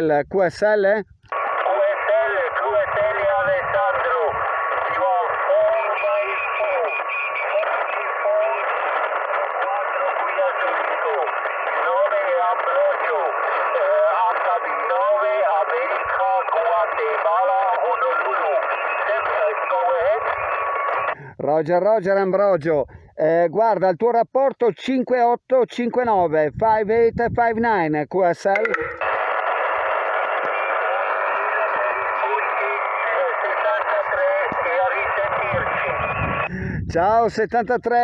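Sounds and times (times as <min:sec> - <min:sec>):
overlapping radio signals: 0:00.0 - 0:38.0
radio speech through speaker: 0:00.0 - 0:38.0
steady radio whistle: 0:01.3 - 0:21.2, 0:28.6 - 0:36.5.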